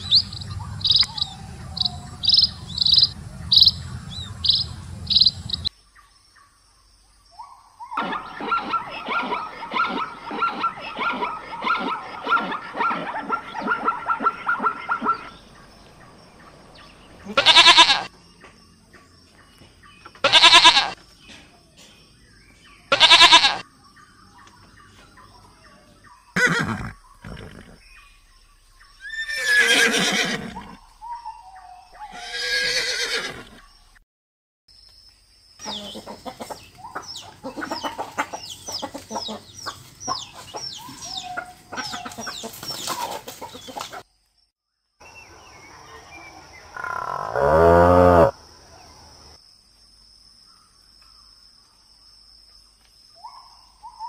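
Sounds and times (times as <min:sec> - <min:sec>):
chickens clucking and chirping: 0:00.0 - 0:05.7, 0:08.0 - 0:17.4, 0:35.6 - 0:44.1
goats bleating: 0:17.3 - 0:18.1, 0:20.2 - 0:21.0, 0:22.9 - 0:23.6
cow mooing: 0:46.8 - 0:48.4.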